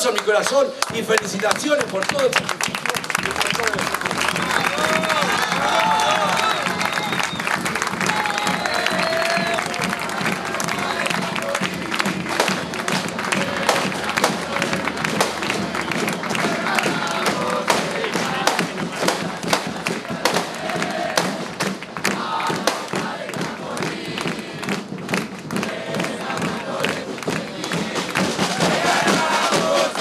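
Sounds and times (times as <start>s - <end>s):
clapping: 0.0s - 28.4s
crowd cheering and chanting: 0.0s - 30.0s.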